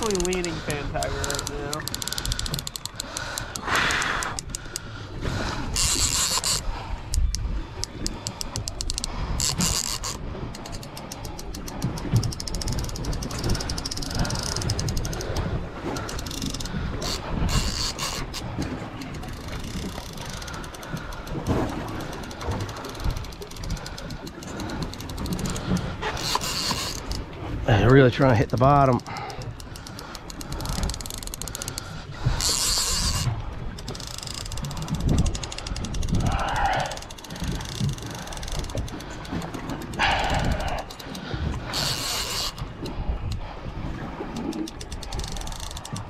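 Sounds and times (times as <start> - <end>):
fishing reel clicking: 0.0 - 5.0, 5.6 - 27.3, 28.0 - 43.4, 44.3 - 46.0
low rumble of open water: 0.0 - 46.0.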